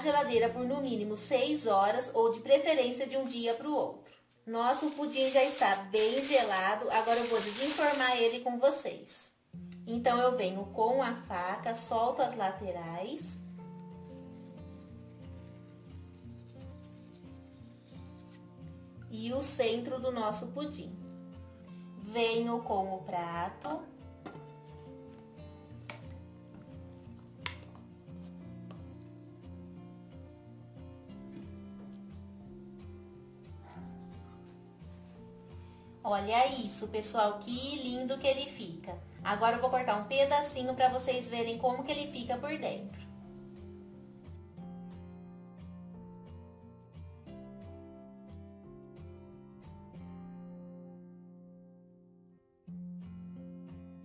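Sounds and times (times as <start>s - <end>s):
background music with steady beat: 23.1s - 36.7s, 42.3s - 50.6s.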